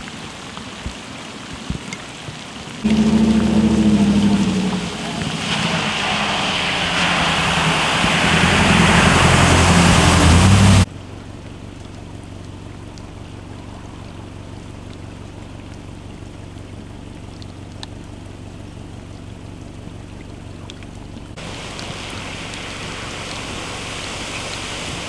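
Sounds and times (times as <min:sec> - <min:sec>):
rain: 0:00.0 - 0:25.0
running floodwater: 0:00.0 - 0:25.0
rushing water from tyres: 0:00.0 - 0:25.0
truck engine running: 0:02.8 - 0:25.0.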